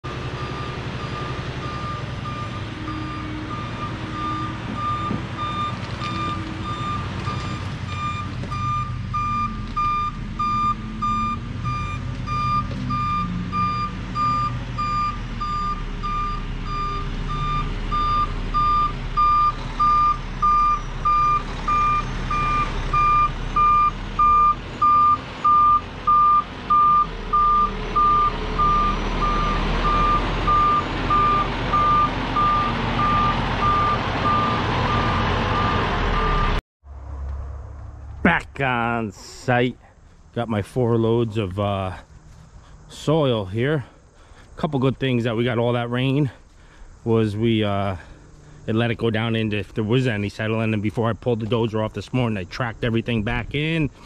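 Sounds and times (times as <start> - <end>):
diesel engine running: 0.0 - 54.0
truck backup alarm beeping: 0.1 - 36.6.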